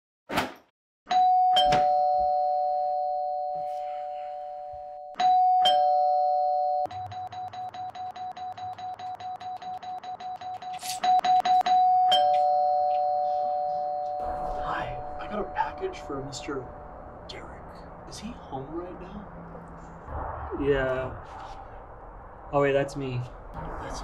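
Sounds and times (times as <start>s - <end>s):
two-note doorbell chime: 1.1s - 8.2s, 11.2s - 16.6s.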